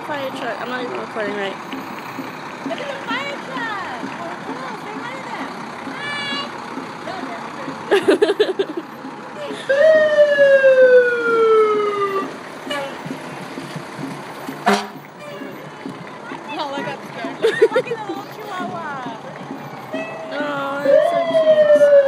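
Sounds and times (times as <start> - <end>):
fire engine siren wailing: 9.5 - 13.1, 19.4 - 22.0.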